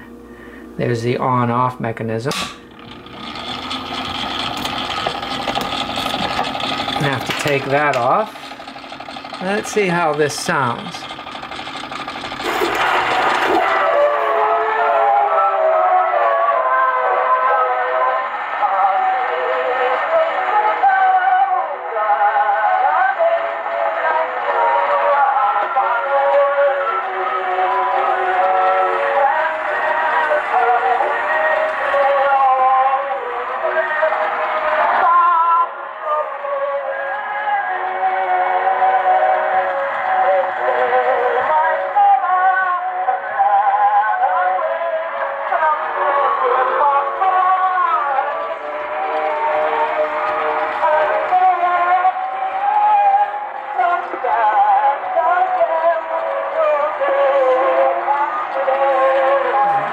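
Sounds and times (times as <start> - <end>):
record surface hiss: 0.0 - 8.4
tinny sung gramophone recording: 22.8 - 59.9.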